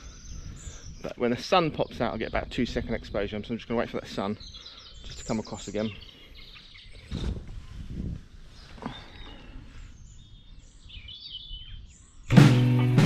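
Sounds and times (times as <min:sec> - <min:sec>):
birds chirping: 0:00.0 - 0:13.0
low rustling bursts: 0:07.0 - 0:10.0.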